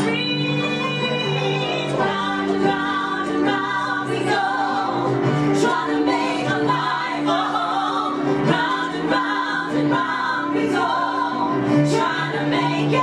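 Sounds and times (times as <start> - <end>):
women singing in harmony: 0.0 - 13.0.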